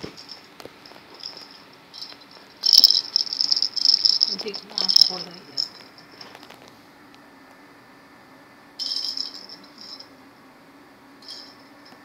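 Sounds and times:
cat toy ball rattling: 0:00.0 - 0:06.2.

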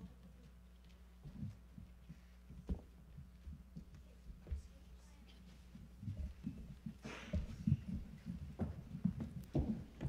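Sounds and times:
footsteps on stage floor: 0:00.0 - 0:10.0
steady electrical hum: 0:00.0 - 0:10.0.

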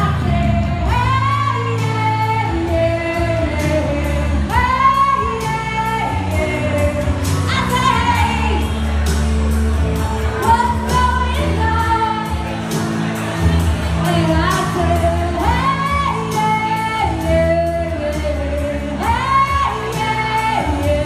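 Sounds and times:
woman singing into a microphone: 0:00.0 - 0:08.9, 0:10.4 - 0:12.6, 0:13.9 - 0:21.0
backing music with bass and drums: 0:00.0 - 0:21.0.

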